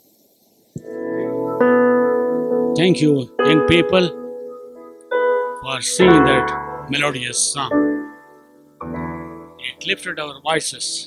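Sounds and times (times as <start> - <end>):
electronic keyboard chord: 0.8 - 11.0.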